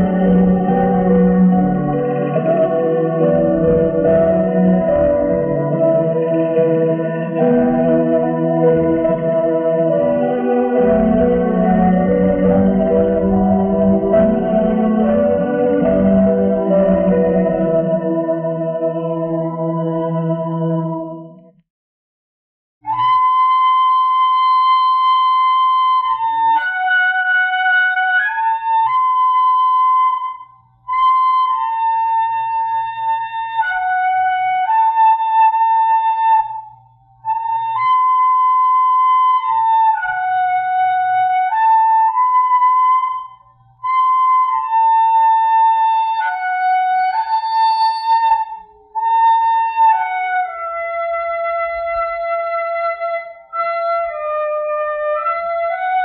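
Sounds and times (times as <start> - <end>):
slow flute melody: 0.0 - 21.6, 22.8 - 56.0.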